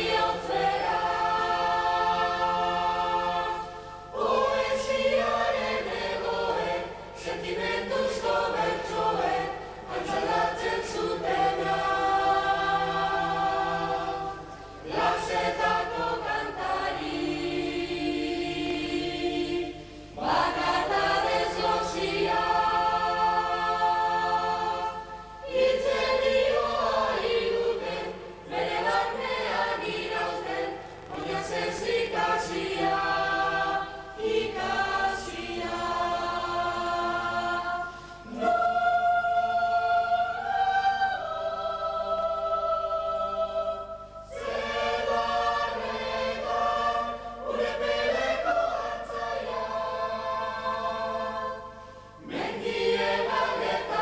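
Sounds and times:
choir singing in parts: 0:00.0 - 0:54.0.

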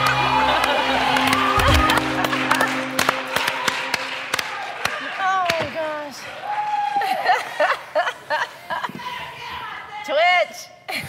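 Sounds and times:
dance song: 0:00.0 - 0:04.8
scattered hand clapping: 0:00.0 - 0:07.1.

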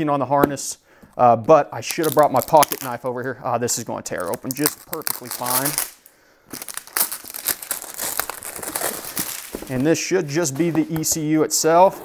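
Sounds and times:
plastic shrink-wrap tearing and crinkling: 0:01.9 - 0:03.0, 0:04.2 - 0:09.8.

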